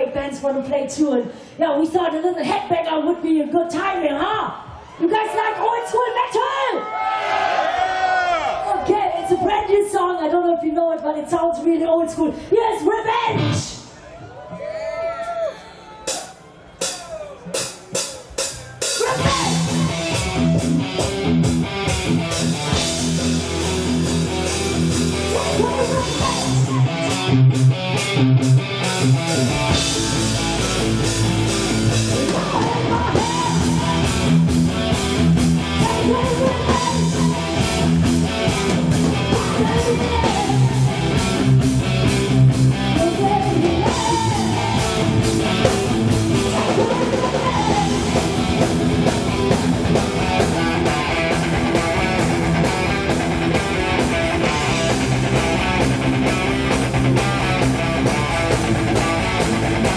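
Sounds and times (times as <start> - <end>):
heavy metal band playing: 16.1 - 59.9.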